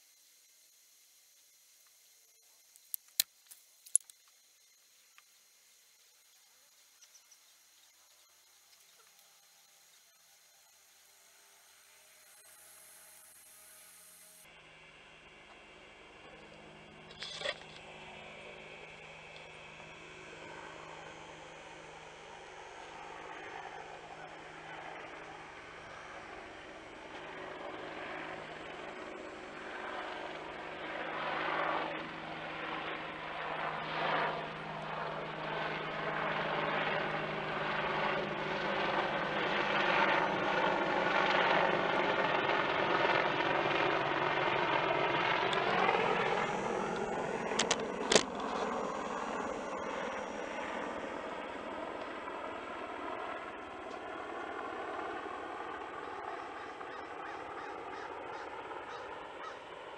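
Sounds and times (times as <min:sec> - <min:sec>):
sharp clicks: 0:02.7 - 0:04.4
low-flying aircraft passing overhead: 0:06.2 - 0:59.9.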